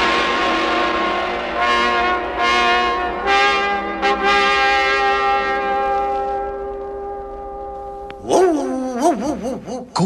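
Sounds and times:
held brass chord: 0.0s - 8.1s
dog howling: 8.2s - 10.0s.

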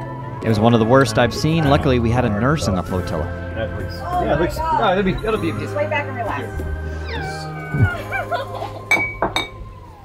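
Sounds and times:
background music: 0.0s - 10.0s
woman whimpering in pain: 6.9s - 8.9s.

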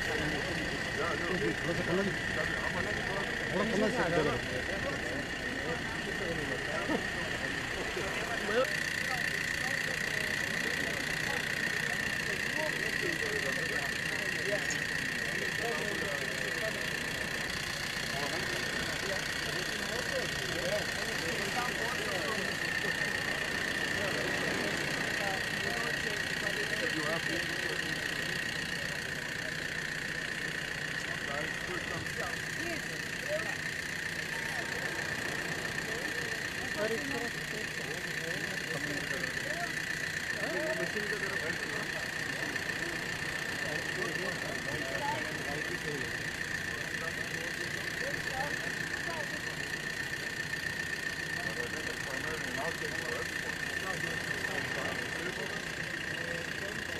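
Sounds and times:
machine hum with high whine: 0.0s - 56.9s
murmur of many voices: 0.0s - 56.9s.

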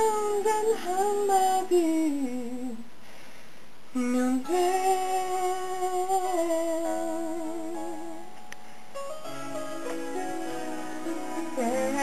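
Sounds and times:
man singing with vibrato: 0.0s - 3.0s, 3.9s - 8.4s, 9.2s - 12.0s
backing track chords: 4.4s - 12.0s.

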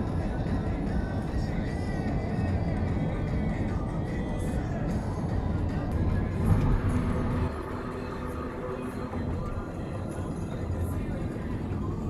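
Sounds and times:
car road noise rumble: 0.0s - 12.0s.

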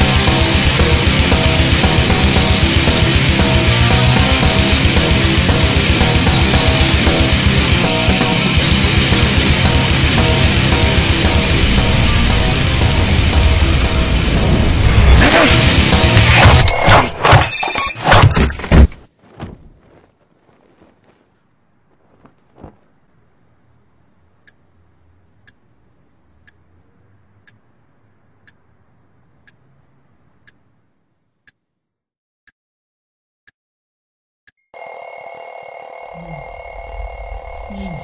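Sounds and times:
loud heavy music: 0.0s - 16.7s
soft thuds: 18.4s - 23.0s
clock ticking: 25.4s - 25.7s, 26.4s - 26.7s, 27.4s - 27.6s.

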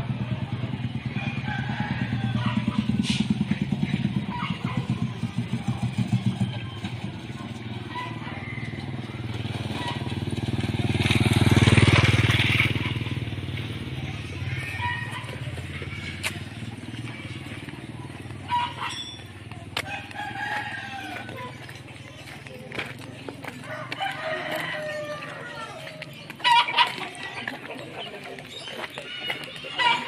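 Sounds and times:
motorcycle passing close: 0.0s - 28.7s
small motorcycle engines running: 0.0s - 30.0s.

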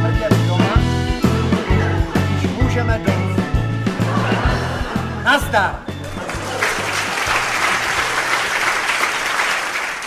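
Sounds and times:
music: 0.0s - 9.5s
audience applause: 6.0s - 10.0s.

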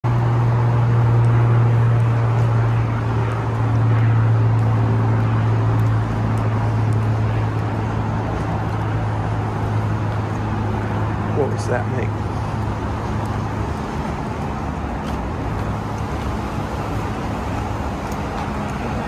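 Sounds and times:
constant low hum: 0.0s - 19.0s
road traffic noise: 0.0s - 19.0s.

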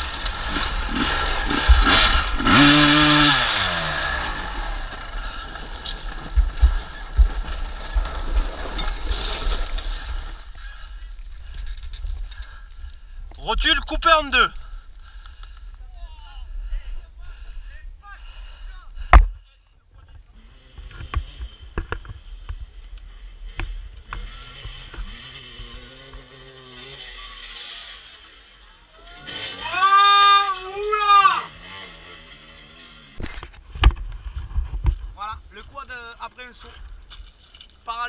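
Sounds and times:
two-stroke engines revving: 0.0s - 8.8s, 23.1s - 33.2s.

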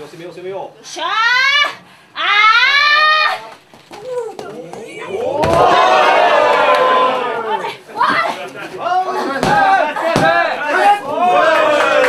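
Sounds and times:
crowd shouting and cheering: 3.3s - 12.0s.

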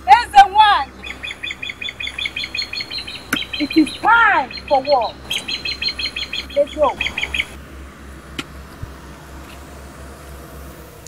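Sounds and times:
fast high bird chirps: 0.8s - 7.6s
lower bird calls: 0.9s - 7.6s.

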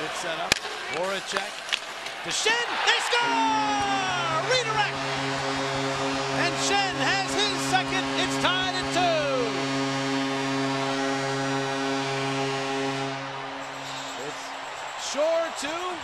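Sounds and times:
crowd cheering: 0.0s - 16.0s
goal horn blaring: 2.9s - 15.0s.

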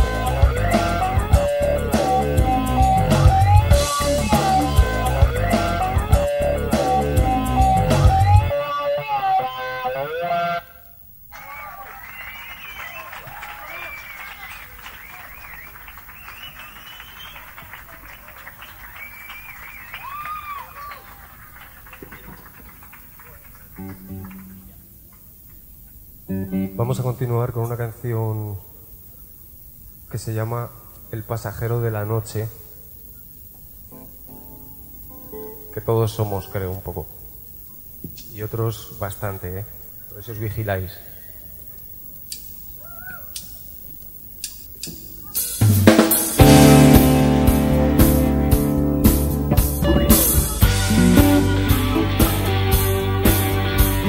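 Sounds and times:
live rock band playing: 0.0s - 10.6s, 45.4s - 54.0s
guitar ringing out: 0.0s - 11.0s, 45.9s - 54.0s
crowd applause with whistles: 11.3s - 24.8s
quiet guitar notes: 46.4s - 54.0s.

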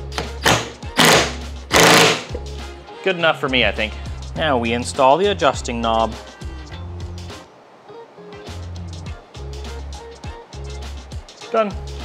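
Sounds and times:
impact wrench hammering: 0.2s - 2.4s.

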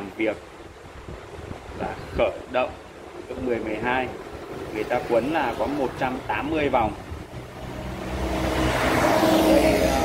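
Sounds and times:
vehicle engine passing by: 7.0s - 10.0s.

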